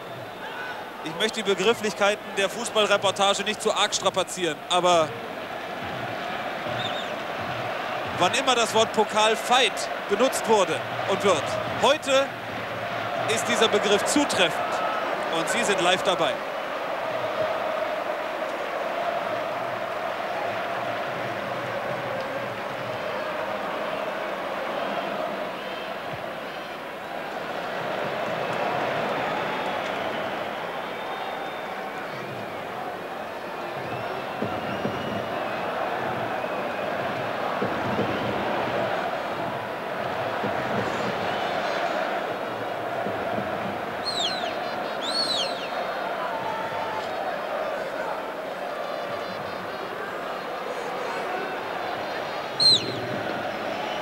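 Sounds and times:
stadium crowd chanting and shouting: 0.0 - 54.0
shrill whistles: 29.4 - 32.6, 44.0 - 45.9, 51.8 - 53.0.

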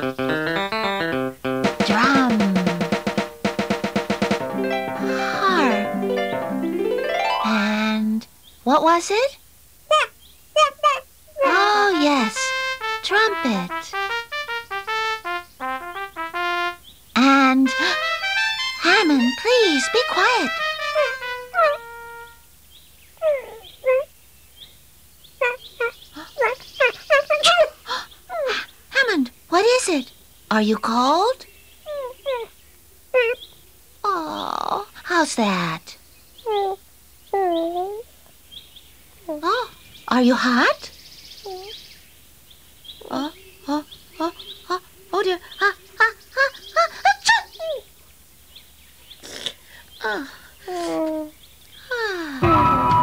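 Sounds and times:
held musical note: 0.0 - 8.4, 11.4 - 16.8, 17.6 - 22.5, 52.4 - 53.0
person imitating bird chirps: 1.9 - 2.8, 9.9 - 12.5, 23.2 - 24.1, 25.4 - 28.7, 33.1 - 33.5, 36.4 - 38.1
squeaky chick-like chirps: 18.8 - 22.4, 23.2 - 24.2, 25.4 - 28.7, 31.8 - 33.4, 41.4 - 41.8.

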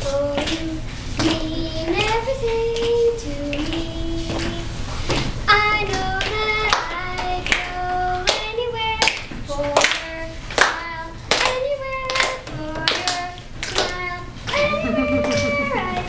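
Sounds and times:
hand-clapping on the beat: 0.4 - 16.0
children singing: 14.5 - 16.0.

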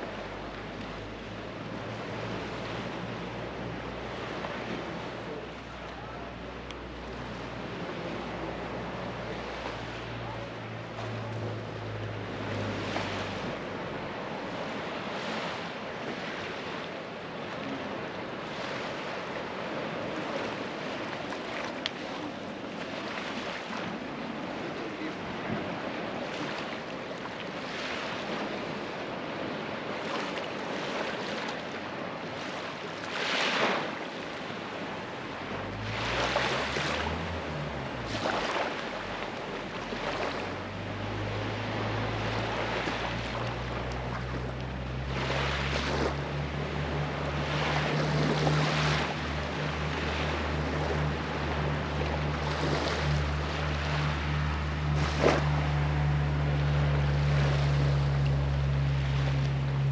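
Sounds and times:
low engine hum: 0.0 - 59.9
small waves washing on beach: 0.0 - 59.9
engine hum rising in pitch: 6.9 - 14.9, 35.2 - 59.9.

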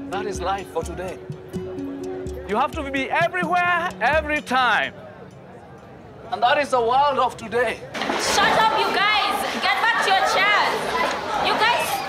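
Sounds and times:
children chattering and calling out: 8.1 - 12.0.

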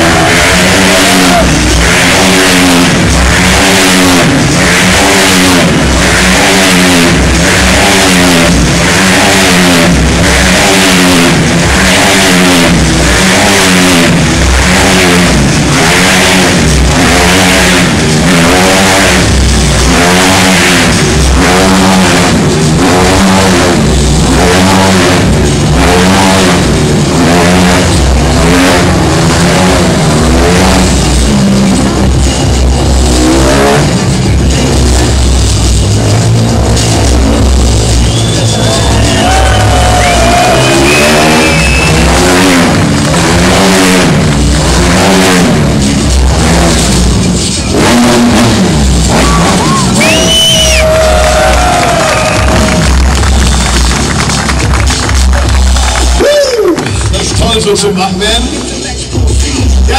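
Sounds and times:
motorcycle engines revving: 0.0 - 59.9.

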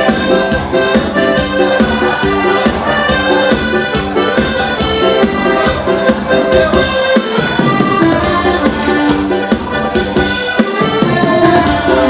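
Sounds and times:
drum machine beat: 0.0 - 12.0
electronic keyboard melody: 0.0 - 12.0.

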